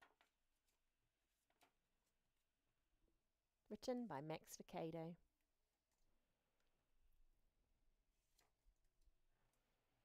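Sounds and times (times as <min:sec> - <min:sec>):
book page turning: 0:00.0 - 0:02.2.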